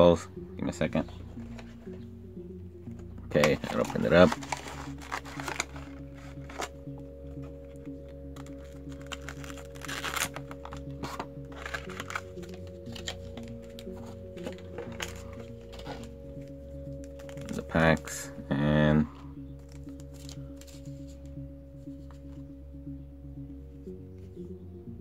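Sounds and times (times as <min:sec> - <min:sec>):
background music with held notes: 0:00.0 - 0:25.0
cardboard box rustling: 0:03.4 - 0:06.8, 0:08.4 - 0:16.2
foil packs crinkling: 0:03.4 - 0:06.8, 0:08.4 - 0:16.2, 0:16.9 - 0:17.9.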